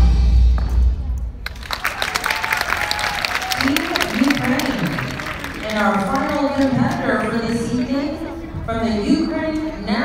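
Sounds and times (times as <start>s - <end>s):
audience applause: 1.4s - 7.2s.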